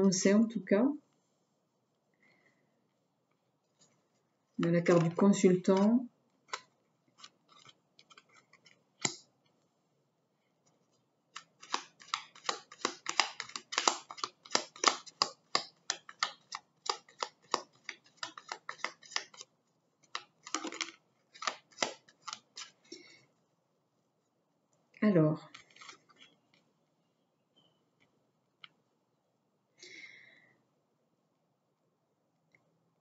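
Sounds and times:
cards being shuffled: 4.9 - 9.2, 11.3 - 22.9, 25.5 - 26.4
cards tapped on cloth table: 11.4 - 19.4.

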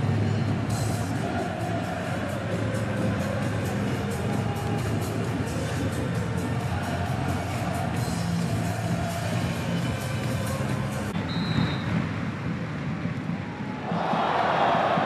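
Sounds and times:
background music: 0.0 - 15.0
stadium crowd roar: 0.0 - 15.0.

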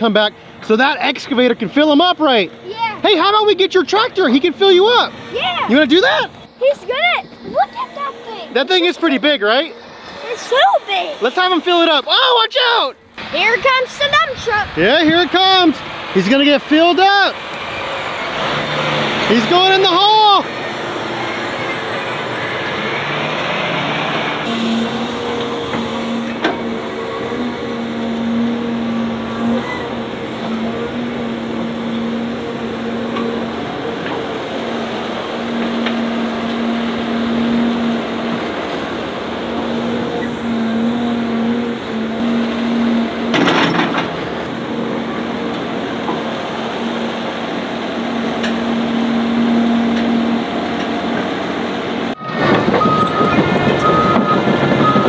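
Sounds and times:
heavy diesel machinery running: 0.0 - 55.0.

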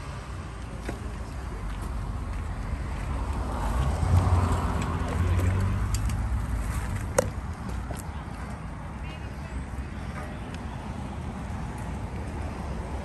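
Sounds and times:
bicycle tyres rolling on pavement: 0.4 - 13.0.

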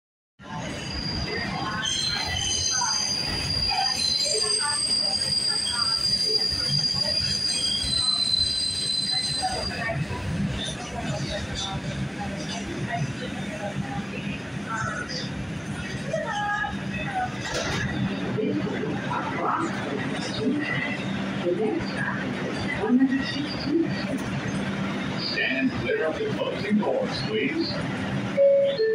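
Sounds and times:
subway car rumble: 0.4 - 28.9
train wheels squealing: 0.6 - 10.0.

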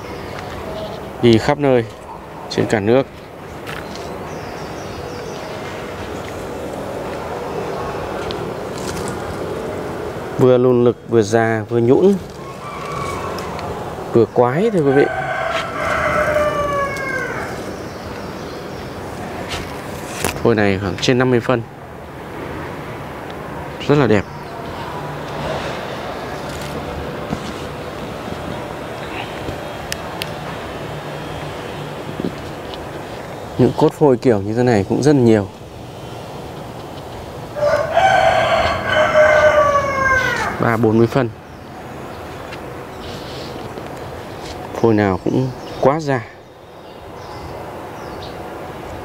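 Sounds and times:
rooster crowing: 12.4 - 17.7, 37.5 - 40.7.

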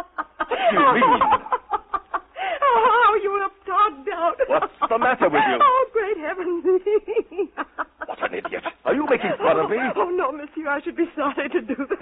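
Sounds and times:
woman laughing: 0.0 - 3.3, 6.4 - 10.2.

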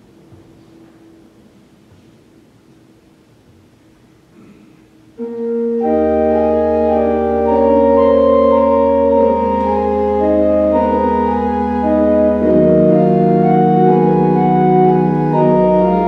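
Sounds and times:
church organ chords: 5.2 - 16.0
deep organ pedal bass: 5.2 - 16.0.

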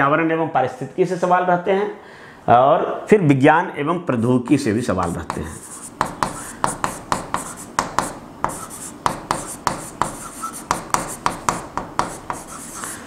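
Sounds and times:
marker pen writing on whiteboard: 5.0 - 13.0.

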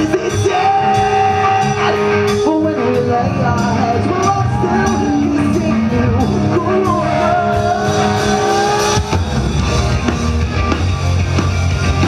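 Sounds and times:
person singing: 0.0 - 9.3
drums: 0.0 - 12.0
electric guitar: 0.0 - 12.0.

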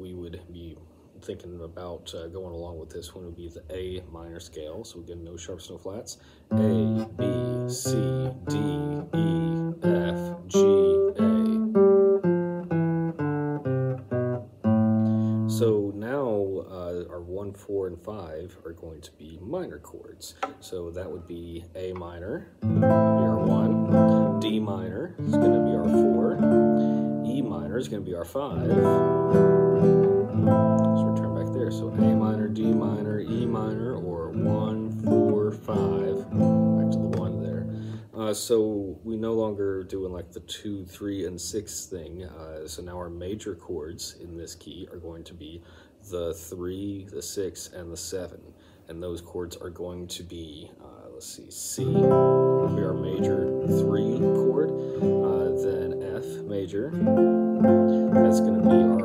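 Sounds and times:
man's voice: 0.0 - 11.8, 15.5 - 29.2, 30.8 - 57.1, 57.8 - 59.0
classical guitar plucked notes: 6.5 - 15.6, 21.9 - 38.0, 51.8 - 59.0.

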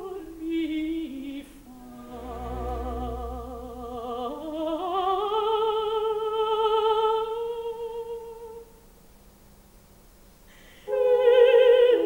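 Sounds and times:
operatic soprano singing: 0.0 - 8.6, 10.9 - 12.0.

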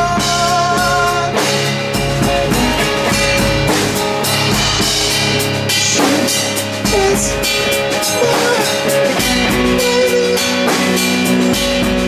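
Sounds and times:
drum kit with cymbals: 0.0 - 12.0
electric guitars: 0.0 - 12.0.

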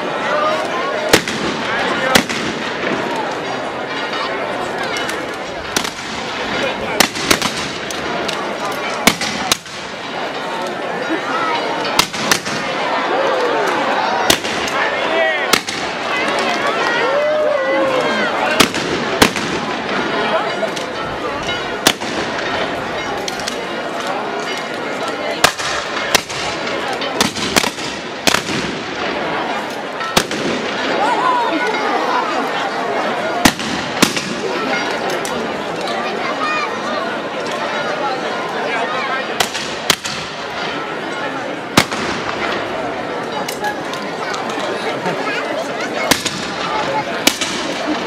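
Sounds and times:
crowd voices: 0.0 - 48.0.

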